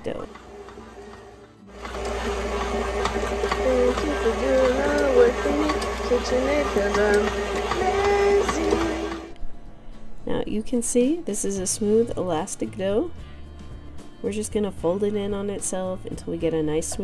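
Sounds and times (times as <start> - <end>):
stand mixer motor whirring: 0.0 - 9.4
person singing: 3.5 - 9.3.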